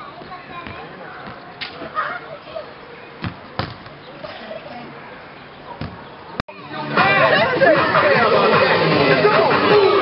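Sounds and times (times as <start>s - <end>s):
faint children's voices: 0.0s - 7.3s
football thudding: 3.2s - 3.9s.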